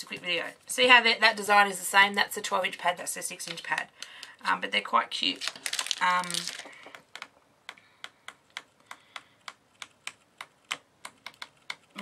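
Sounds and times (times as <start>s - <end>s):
paper pages flipping: 5.4s - 7.3s.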